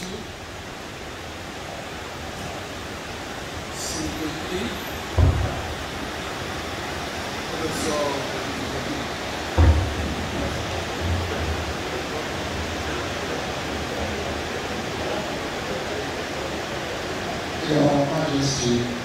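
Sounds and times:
room noise hiss in large hall: 0.0s - 19.0s
short low thump: 5.1s - 5.8s, 9.5s - 11.6s.

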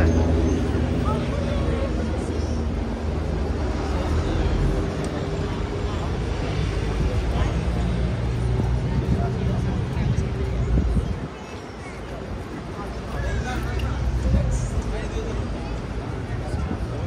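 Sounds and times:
people talking: 0.0s - 2.8s, 3.4s - 17.0s.

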